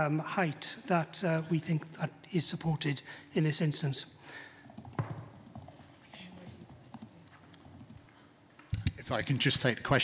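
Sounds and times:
laptop keyboard typing: 4.6s - 8.0s.

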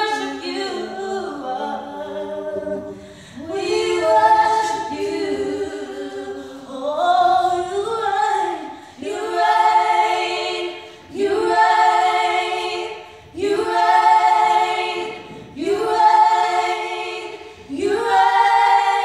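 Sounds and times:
women singing a cappella: 0.0s - 19.0s.

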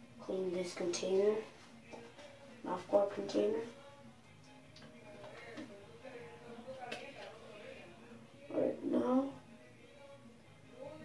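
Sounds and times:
faint background voices: 4.8s - 9.7s.

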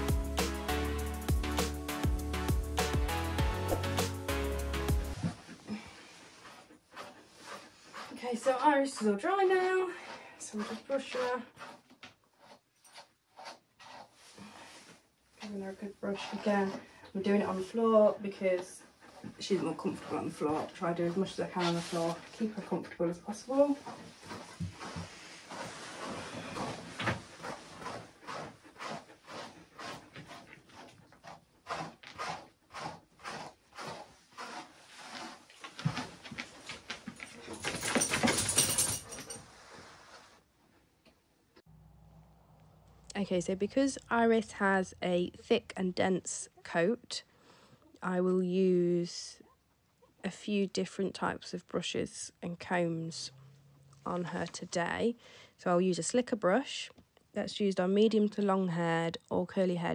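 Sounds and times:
brush scratching through dog fur: 5.1s - 9.7s, 10.5s - 14.3s, 16.0s - 36.2s
brush stroking through dog fur: 19.2s - 30.1s, 39.4s - 40.4s.

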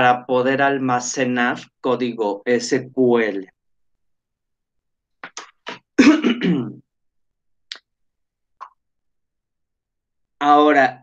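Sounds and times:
man clearing his throat: 5.7s - 6.8s
man coughing: 5.7s - 6.8s.

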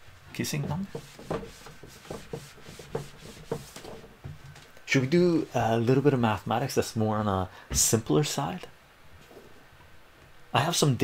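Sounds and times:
cloth rubbing on whiteboard: 0.4s - 4.4s.

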